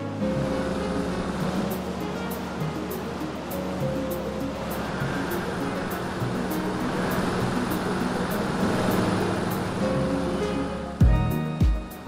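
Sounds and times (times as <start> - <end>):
background music: 0.0 - 12.0
machine running noise: 0.2 - 10.4.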